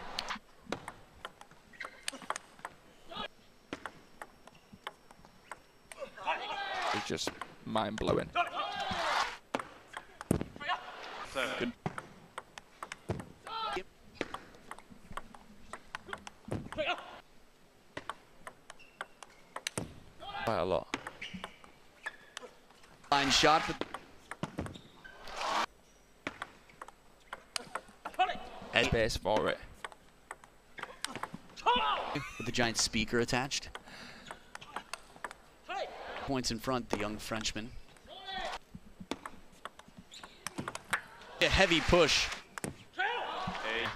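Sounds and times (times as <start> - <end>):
table tennis ball clicking: 0.7 - 2.8, 3.7 - 6.0, 11.8 - 13.3, 14.2 - 16.4, 18.0 - 19.8, 26.2 - 28.2, 29.8 - 31.4, 33.7 - 35.4, 39.0 - 41.0.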